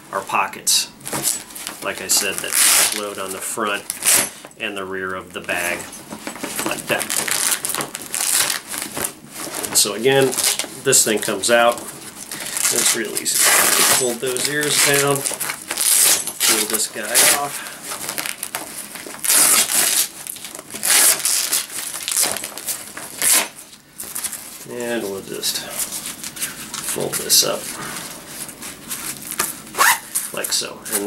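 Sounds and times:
fabric bag rustling: 0:01.0 - 0:31.0
velcro strips tearing apart: 0:02.3 - 0:03.1, 0:06.9 - 0:10.7, 0:12.2 - 0:24.4, 0:29.1 - 0:30.2.

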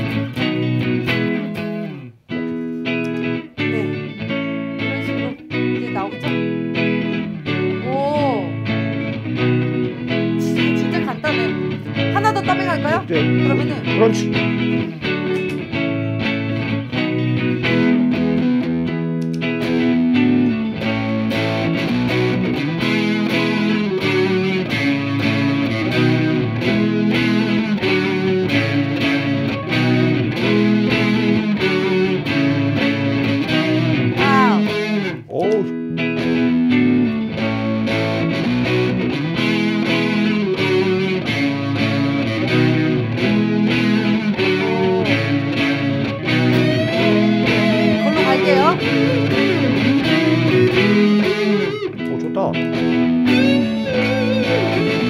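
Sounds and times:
electric guitar lead lines: 0:00.0 - 0:55.0
electric guitar rhythm loop: 0:00.0 - 0:55.0.

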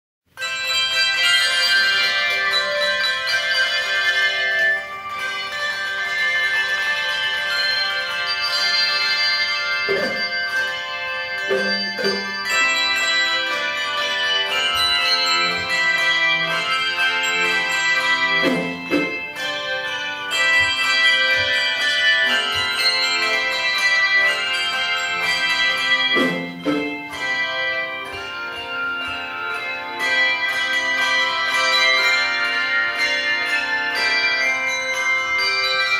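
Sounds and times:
handbell choir playing chords: 0:00.4 - 0:35.9
low bells struck: 0:00.4 - 0:35.9.

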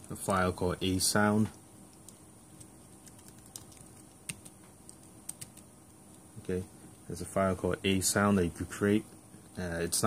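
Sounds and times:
keyboard typing clicks: 0:03.0 - 0:05.7.

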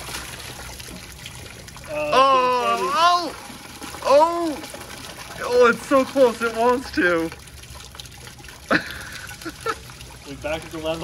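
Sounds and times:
water draining in toilet: 0:00.0 - 0:11.0.

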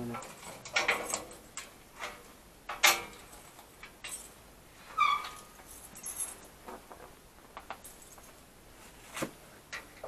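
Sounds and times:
metal gate clicks and clanks: 0:00.0 - 0:04.3, 0:05.0 - 0:06.4.

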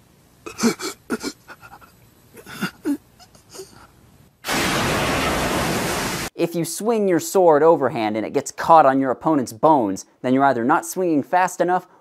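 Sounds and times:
blood spraying hiss effect: 0:04.4 - 0:06.3.

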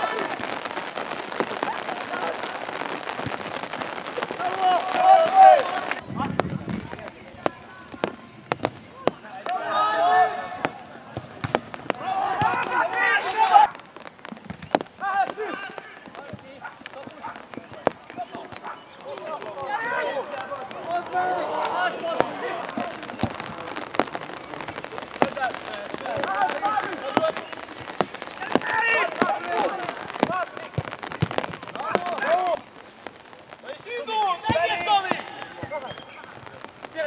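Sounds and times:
players shouting: 0:00.0 - 0:37.0.

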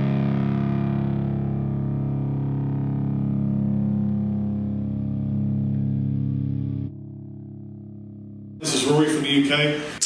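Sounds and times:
distorted electric guitar chord: 0:00.0 - 0:09.3.

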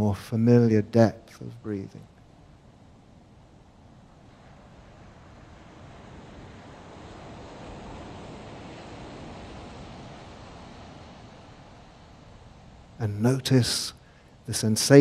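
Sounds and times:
ocean waves washing in: 0:00.3 - 0:15.0.

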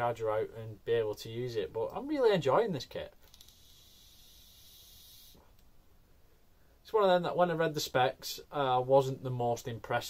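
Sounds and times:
vape hiss: 0:03.2 - 0:05.6.

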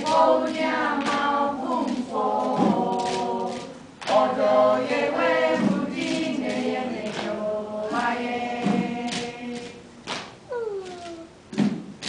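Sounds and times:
hand claps: 0:00.0 - 0:11.8
voice sliding down in pitch: 0:10.5 - 0:11.4.

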